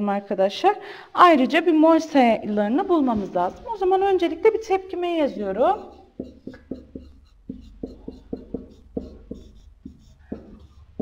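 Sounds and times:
stylus clicking on pen tablet: 5.7s - 11.0s.

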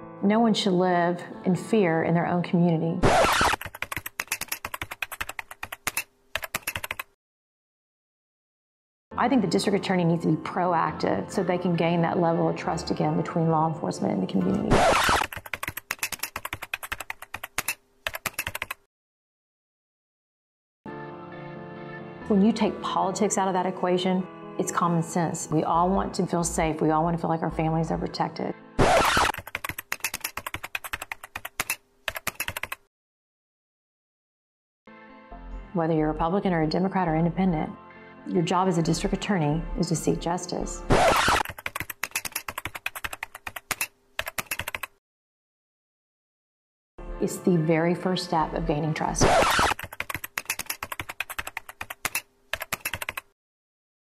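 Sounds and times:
keyboard key clicks: 3.6s - 7.1s, 15.2s - 18.8s, 29.4s - 32.8s, 49.8s - 53.2s.

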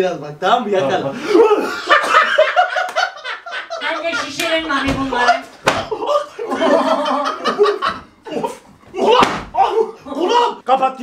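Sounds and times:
men laughing loudly: 1.2s - 10.6s.

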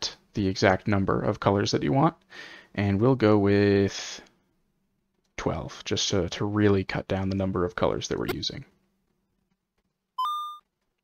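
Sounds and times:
short electronic beep: 10.2s - 10.6s.

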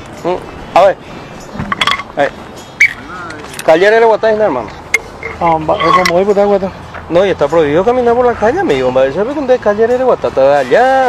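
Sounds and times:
sharp metallic clinks: 0.0s - 10.1s.

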